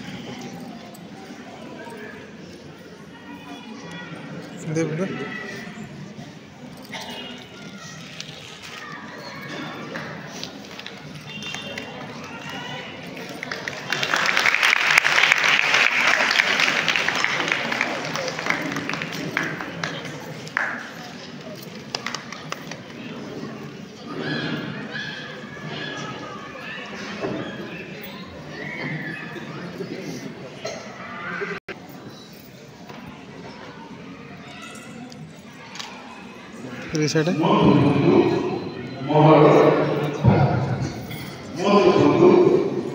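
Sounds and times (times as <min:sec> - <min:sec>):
faint voices: 0:00.0 - 0:42.9.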